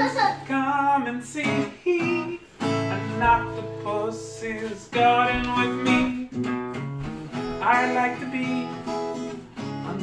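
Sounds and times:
man singing: 0:00.0 - 0:06.6, 0:07.5 - 0:10.0
acoustic guitar strumming: 0:00.0 - 0:10.0.

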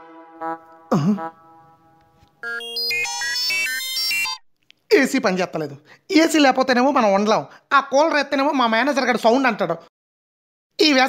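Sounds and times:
air conditioner beeping melody: 0:02.4 - 0:04.4.

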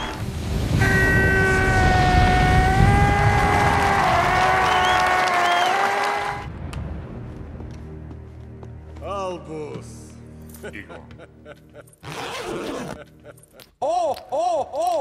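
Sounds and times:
crowd clapping and cheering: 0:00.0 - 0:00.3, 0:01.8 - 0:06.9
film soundtrack music: 0:00.0 - 0:15.0.

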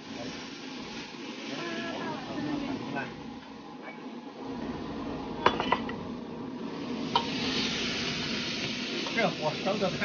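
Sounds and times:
green beans sizzling in wok: 0:00.0 - 0:10.0.

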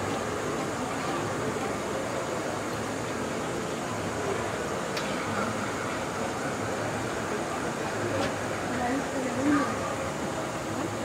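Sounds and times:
faint distant voices: 0:00.0 - 0:11.0
hall hum and hiss: 0:00.0 - 0:11.0.

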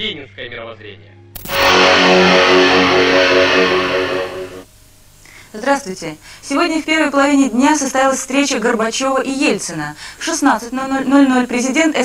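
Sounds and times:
news jingle chord: 0:01.4 - 0:04.7.

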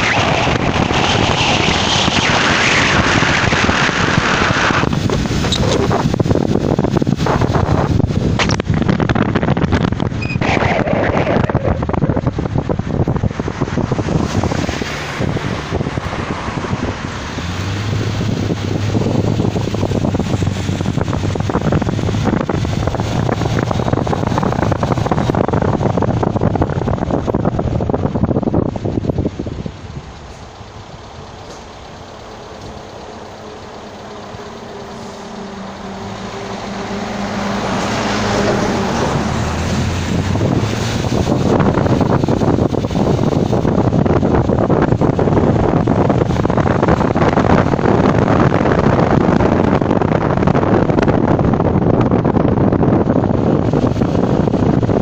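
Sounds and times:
road noise: 0:00.0 - 0:55.0
vehicle engine hum: 0:00.0 - 0:55.0
wind noise: 0:00.0 - 0:55.0.

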